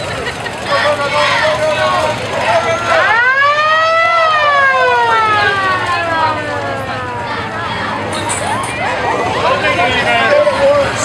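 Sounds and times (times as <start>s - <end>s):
siren wailing: 2.4s - 7.6s.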